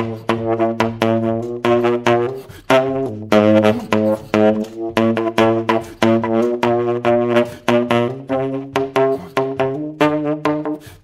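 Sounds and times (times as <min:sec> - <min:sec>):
solo jazz saxophone: 0:00.0 - 0:11.0.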